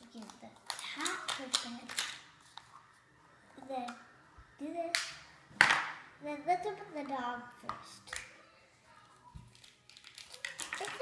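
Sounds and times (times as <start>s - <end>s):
plastic packaging crackling: 9.4s - 11.0s.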